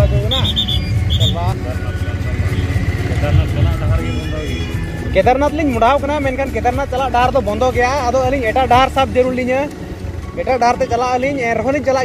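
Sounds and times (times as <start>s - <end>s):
motorcycle engine rumble: 0.0s - 12.0s.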